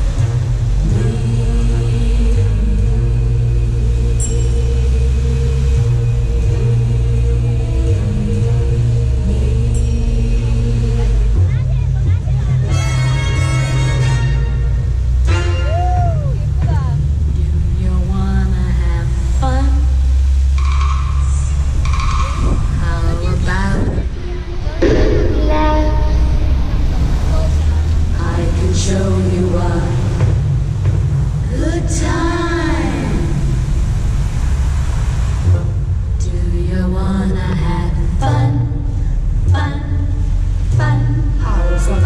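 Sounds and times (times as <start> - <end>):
heavy low rumble: 0.0 - 42.0
low thump: 24.8 - 28.2
fountain water splashing: 26.8 - 38.0.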